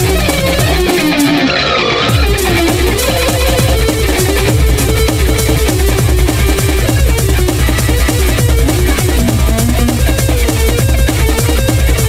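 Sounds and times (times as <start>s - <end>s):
bass: 0.0s - 12.0s
drums: 0.0s - 12.0s
electric guitar melody: 0.0s - 12.0s.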